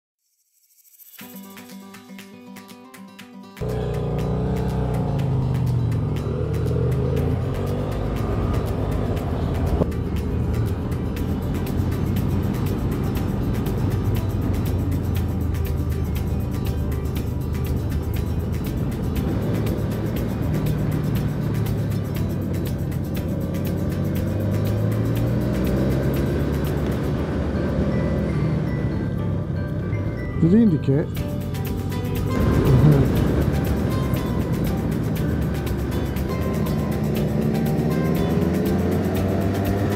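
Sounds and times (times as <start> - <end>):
music: 0.8 - 39.9
motorcycle engine revving: 3.6 - 30.2, 31.1 - 39.9.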